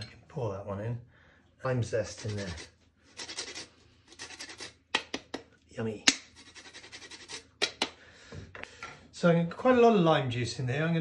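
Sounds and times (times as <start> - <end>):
zest grated on metal grater: 2.0 - 4.8, 6.4 - 7.5.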